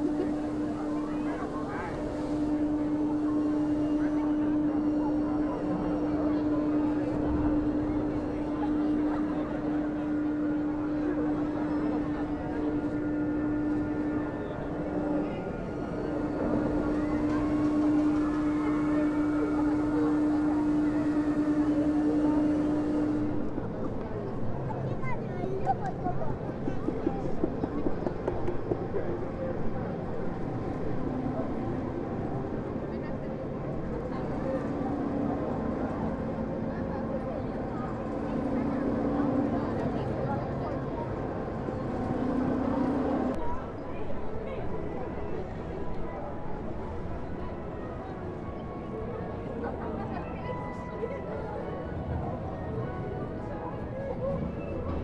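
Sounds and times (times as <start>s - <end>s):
amusement ride machinery humming: 0.0s - 55.0s
crowd noise and voices: 0.0s - 55.0s.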